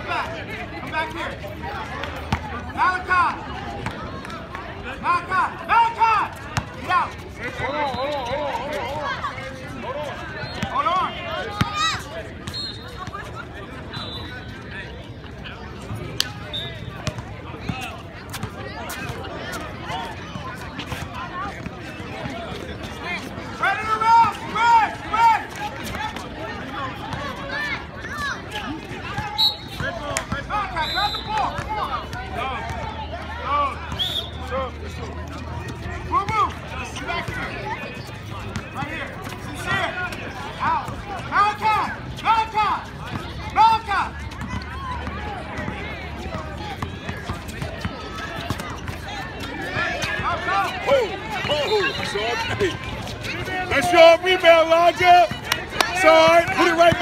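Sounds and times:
voices shouting: 0:35.4 - 0:57.0.

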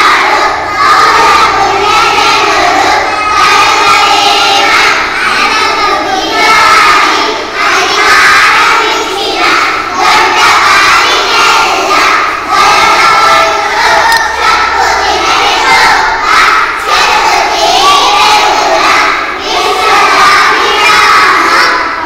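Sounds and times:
children chanting verses in unison: 0:00.0 - 0:22.0.

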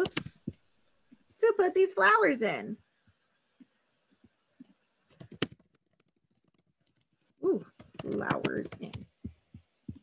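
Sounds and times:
keyboard keystroke clicks: 0:00.0 - 0:00.6, 0:05.1 - 0:07.0, 0:07.8 - 0:10.0.

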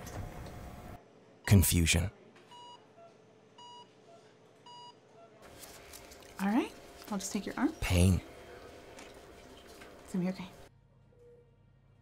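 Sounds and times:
patient monitor beeps: 0:02.5 - 0:05.4.

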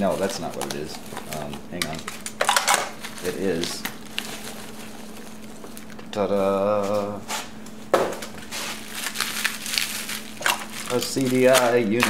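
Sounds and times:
packing peanuts rustling: 0:00.0 - 0:07.0, 0:08.3 - 0:12.0
steady low hum: 0:00.0 - 0:12.0.

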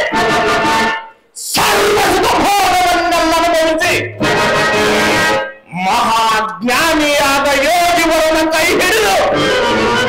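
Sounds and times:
person singing into a microphone: 0:00.0 - 0:04.2, 0:05.7 - 0:10.0.

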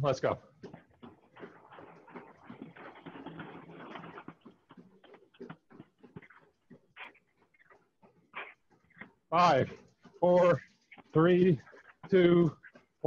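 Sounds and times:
footfalls on treadmills: 0:00.0 - 0:13.0.

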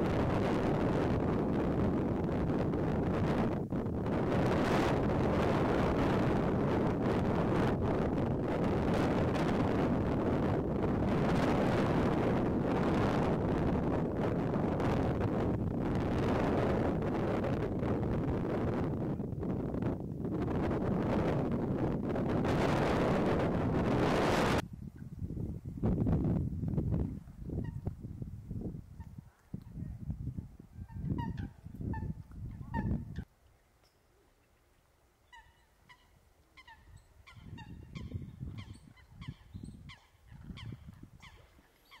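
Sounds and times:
wind rumbling on microphone: 0:00.0 - 0:33.3, 0:35.3 - 0:42.0.

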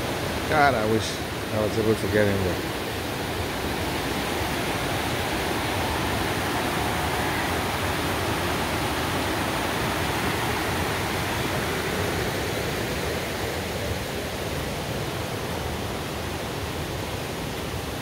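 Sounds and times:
stream rushing over rocks: 0:00.0 - 0:18.0.

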